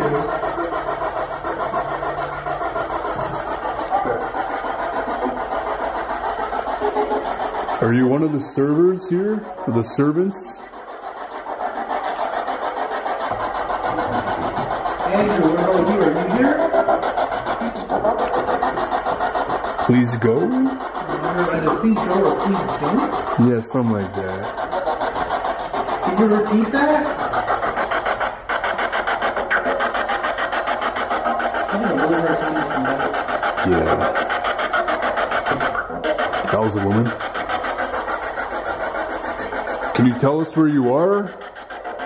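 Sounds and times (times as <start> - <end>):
choppy pulsing radio hiss: 0.0 - 42.0.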